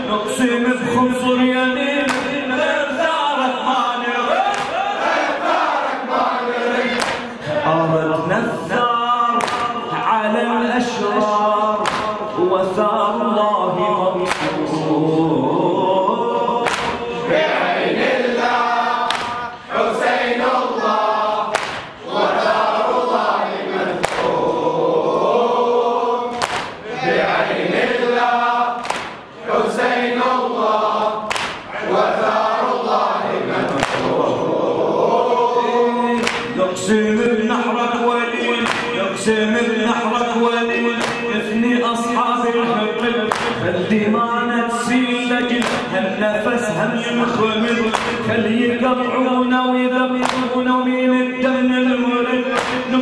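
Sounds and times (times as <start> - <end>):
men chanting in unison: 0.0 - 53.0.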